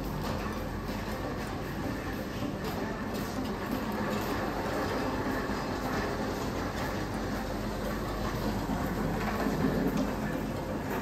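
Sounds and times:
large indoor hall noise: 0.0 - 11.0
wheels rolling over tiled floor: 0.0 - 11.0.

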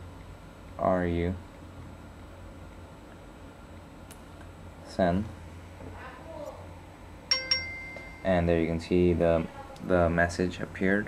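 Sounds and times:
high message alert dings: 7.3 - 8.5.

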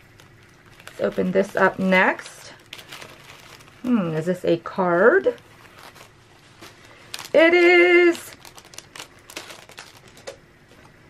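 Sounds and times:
plastic sleeve crinkling: 0.0 - 11.0.

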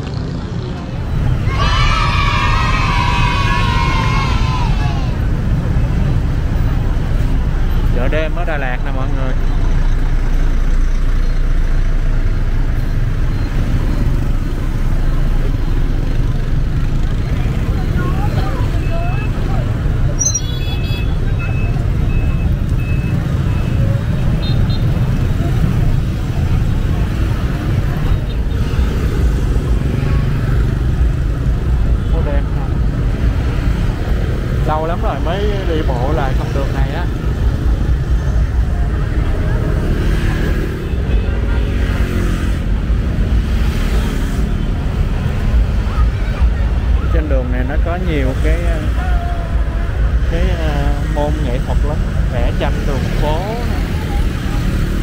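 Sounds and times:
bus rumbling: 0.0 - 20.3, 21.0 - 55.0
cars and motorbikes: 0.0 - 55.0
voices: 0.5 - 41.8, 44.6 - 55.0
high electronic beeps: 20.2 - 25.0.

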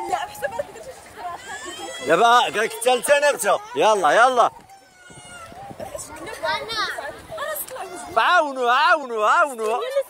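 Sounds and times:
children and women chattering: 0.0 - 10.0.

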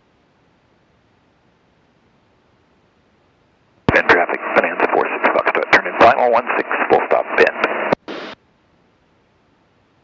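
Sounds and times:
radio static hiss: 3.9 - 8.4.

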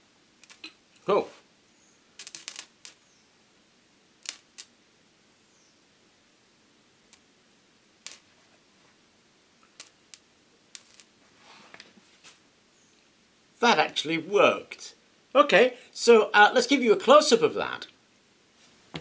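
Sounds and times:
electric arc crackling: 0.4 - 1.1, 2.0 - 3.2, 4.1 - 4.8, 7.0 - 7.3, 8.0 - 8.5, 9.6 - 11.2.

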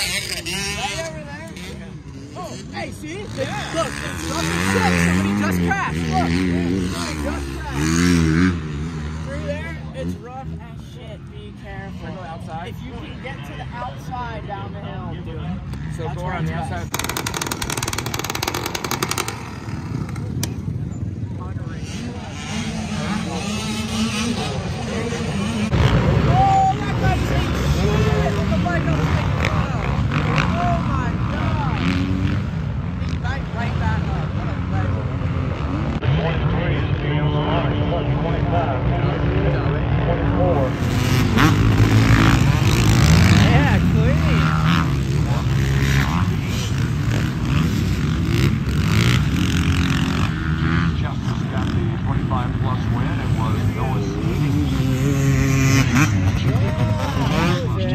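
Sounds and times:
motocross bike engines revving: 0.0 - 57.9.

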